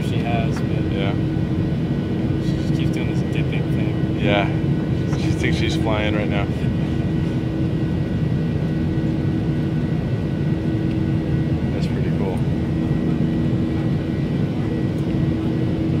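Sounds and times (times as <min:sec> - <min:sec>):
cabin hum: 0:00.0 - 0:16.0
jet engines and air rushing: 0:00.0 - 0:16.0.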